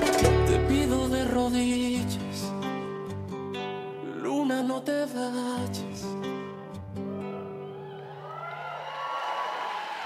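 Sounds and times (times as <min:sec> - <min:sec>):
whoop: 0:07.1 - 0:10.0
audience cheering and applauding: 0:07.2 - 0:10.0.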